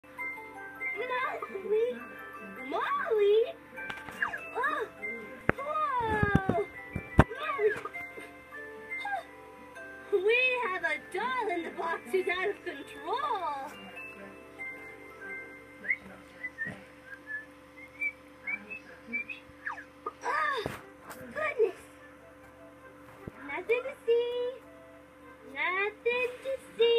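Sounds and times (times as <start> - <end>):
background music with held notes: 0.0 - 26.9.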